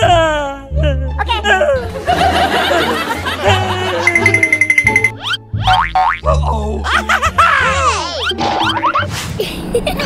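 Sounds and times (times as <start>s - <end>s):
comedy background music: 0.0s - 10.0s.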